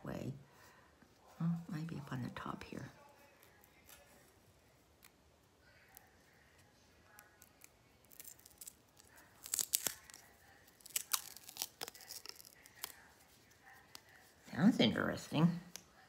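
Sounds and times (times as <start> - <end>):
plastic seal crackling and ripping: 7.2 - 13.1.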